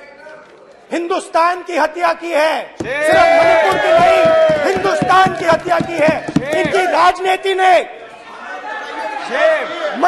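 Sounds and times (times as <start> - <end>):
murmur of many voices: 2.7 - 10.0.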